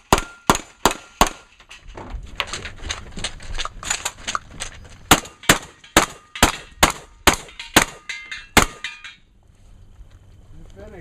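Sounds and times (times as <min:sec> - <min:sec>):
steel targets ringing: 0:05.1 - 0:09.3.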